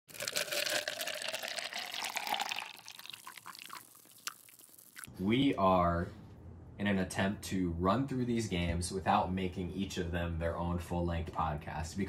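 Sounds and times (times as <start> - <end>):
liquid pouring into a cup: 0.1 - 5.1
faint drips: 0.5 - 5.1.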